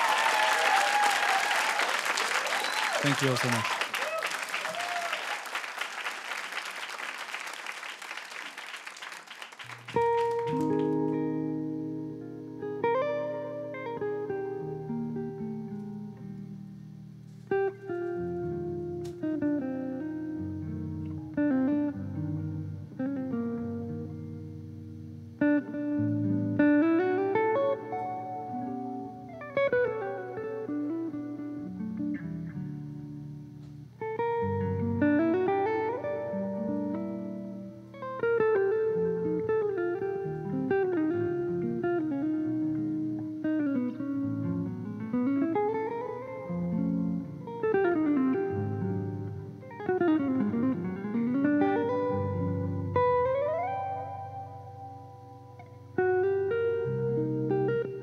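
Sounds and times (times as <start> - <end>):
audience applause: 0.0 - 11.0
jazz electric guitar: 9.6 - 58.0.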